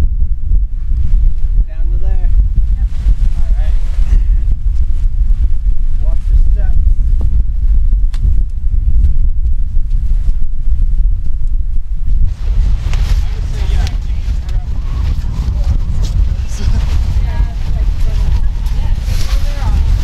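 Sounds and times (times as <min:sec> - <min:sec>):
wind buffeting microphone: 0:00.0 - 0:20.0
rustling noise: 0:00.5 - 0:20.0.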